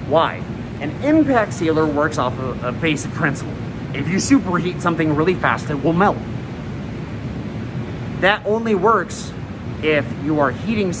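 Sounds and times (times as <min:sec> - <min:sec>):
flow hood blower air rush: 0:00.0 - 0:11.0.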